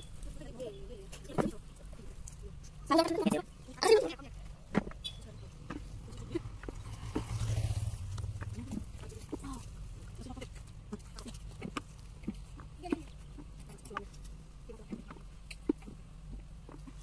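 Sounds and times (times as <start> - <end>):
hands tapping and rustling soil: 8.2 - 17.0.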